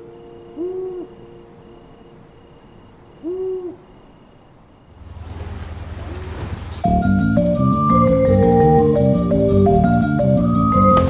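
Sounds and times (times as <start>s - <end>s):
soft owl-like hoot: 0.0s - 4.3s
faint high chirping: 0.0s - 5.1s
lo-fi music track: 6.8s - 11.0s.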